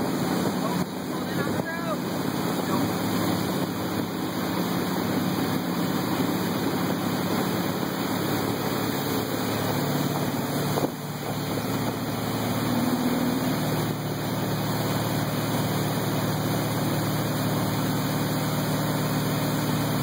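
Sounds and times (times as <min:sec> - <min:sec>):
boat engine running: 0:00.0 - 0:20.0
wake water rushing: 0:00.0 - 0:20.0
wind: 0:00.0 - 0:20.0.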